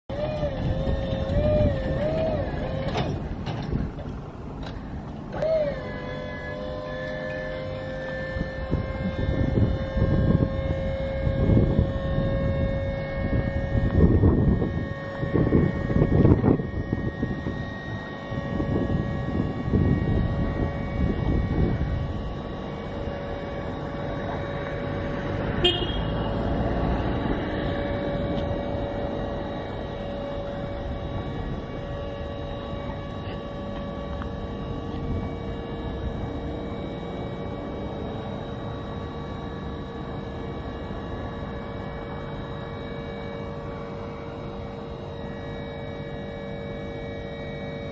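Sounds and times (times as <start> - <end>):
hydraulic pump motor whine: 0.1 - 47.9.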